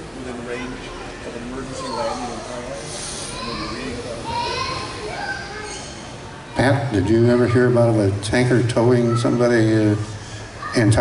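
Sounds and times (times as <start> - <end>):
audience voices: 0.0 - 11.0.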